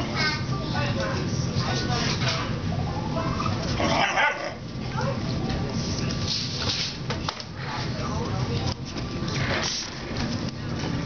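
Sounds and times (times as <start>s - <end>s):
puppies play-fighting and vocalising: 2.6s - 5.4s.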